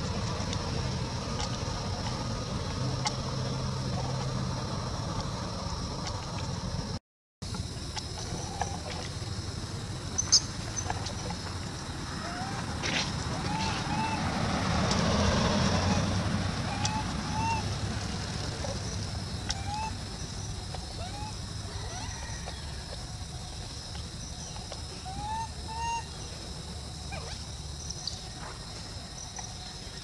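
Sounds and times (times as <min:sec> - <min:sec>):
car passing: 0:00.0 - 0:07.0, 0:11.4 - 0:23.8.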